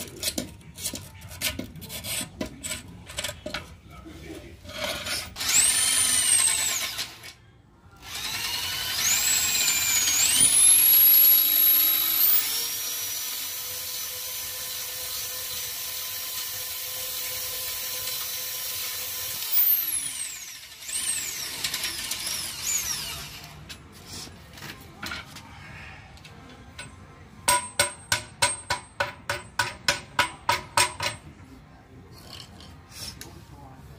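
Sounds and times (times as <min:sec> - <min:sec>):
electric drill whining: 0:05.4 - 0:07.3, 0:08.0 - 0:23.6.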